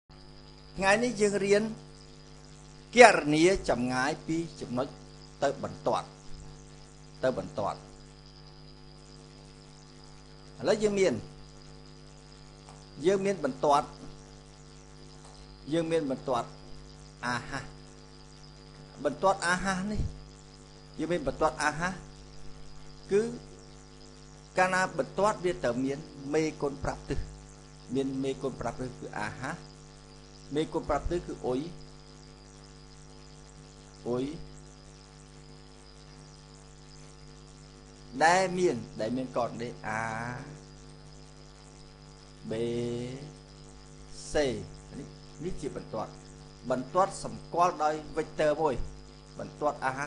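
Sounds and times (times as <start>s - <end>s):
electrical mains hum: 0.1s - 50.0s
faint hiss: 0.6s - 50.0s.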